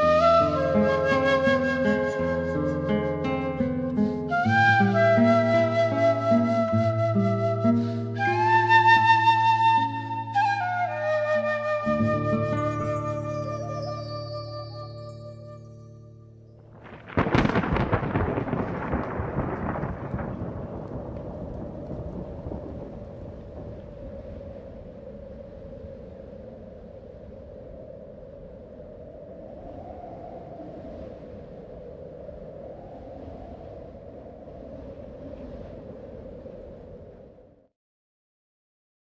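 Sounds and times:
loud crackling crash: 16.7 - 24.3.

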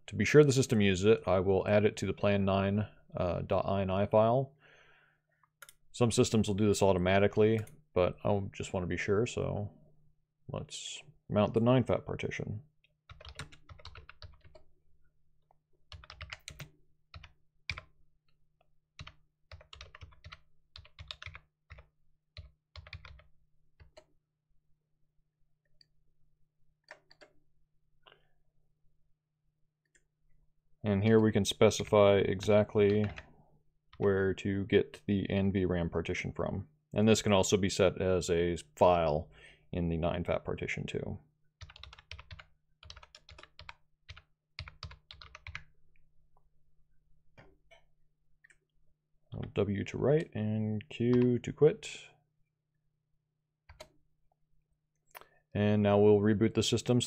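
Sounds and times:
computer keyboard typing: 13.1 - 14.7, 15.9 - 17.9, 19.0 - 24.1, 26.8 - 27.4, 32.8 - 33.2, 41.6 - 45.7, 53.7 - 54.0.

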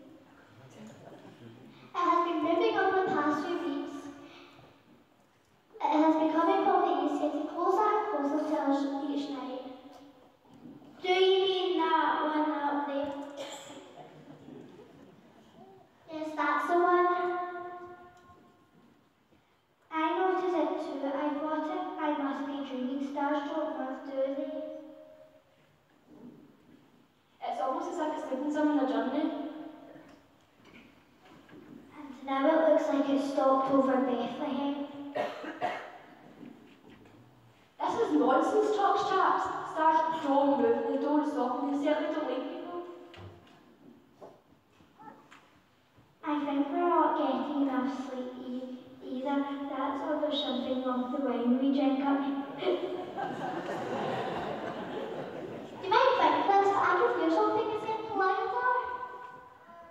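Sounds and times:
person coughing: 13.4 - 14.0, 35.2 - 36.1.

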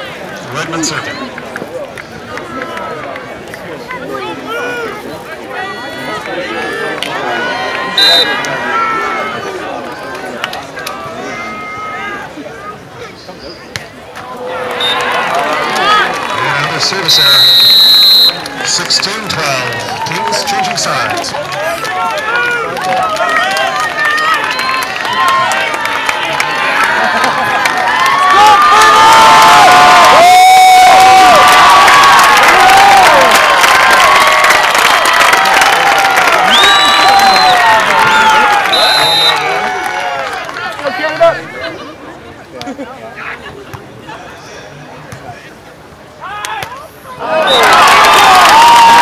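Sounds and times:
crowd cheering and shouting: 0.0 - 12.9, 14.2 - 42.0, 46.2 - 49.0
loud high whistle: 8.0 - 8.4, 17.1 - 18.4, 36.5 - 39.5
short whistle blasts: 17.2 - 18.4, 38.7 - 39.4.

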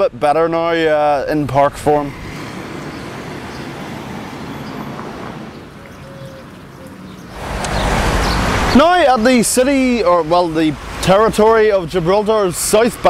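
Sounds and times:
distant traffic hum: 0.0 - 13.0
loud even rushing noise: 7.3 - 11.3.

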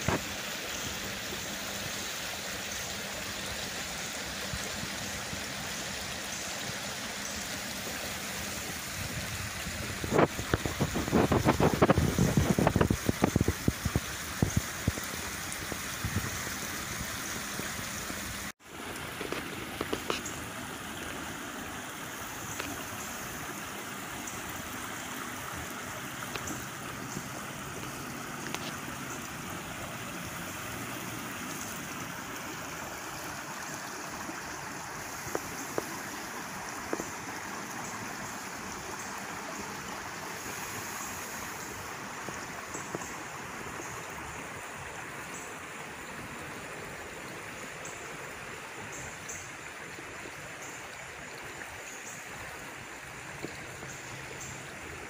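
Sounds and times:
rushing creek water: 0.0 - 55.0.

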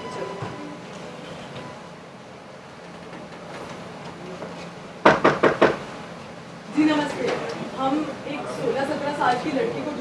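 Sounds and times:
fist knocking on a door: 5.0 - 5.8.

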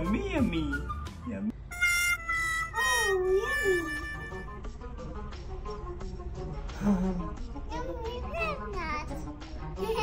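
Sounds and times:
background music: 0.0 - 10.0
short high-pitched call: 1.7 - 4.6.

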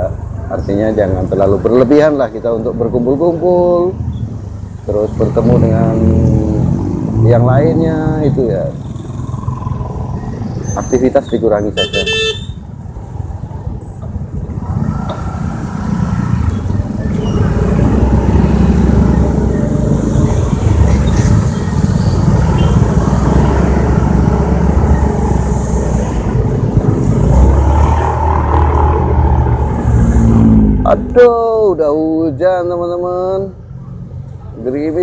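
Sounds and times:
horn toot: 11.8 - 12.6
wind rumble on microphone: 13.5 - 30.8
motorcycle engine: 16.4 - 27.0.

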